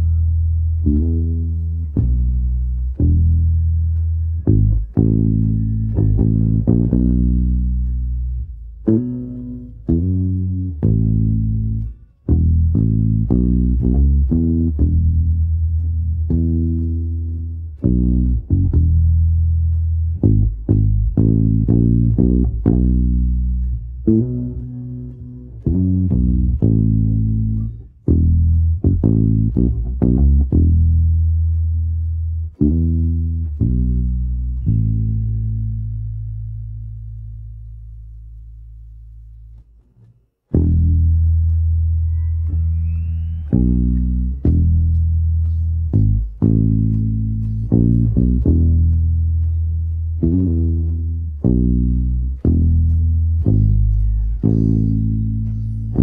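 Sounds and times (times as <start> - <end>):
electric bass guitar playing: 0.0 - 56.0.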